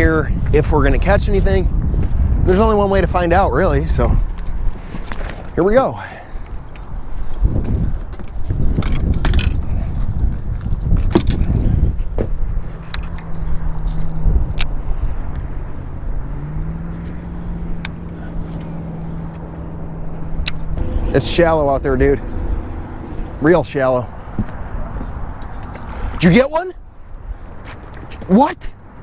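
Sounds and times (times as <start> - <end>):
wind buffeting microphone: 0.0 - 29.0
steady low hum: 6.2 - 26.2.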